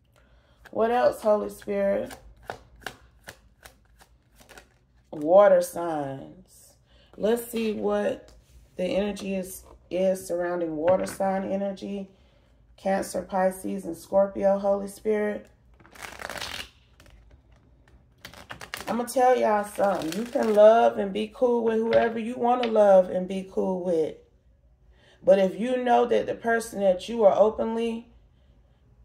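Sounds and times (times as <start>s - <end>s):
woman speaking: 0.7s - 2.2s, 5.1s - 12.1s, 12.8s - 15.5s, 18.8s - 24.2s, 25.2s - 28.1s
cards being shuffled: 2.0s - 5.1s, 15.8s - 18.9s.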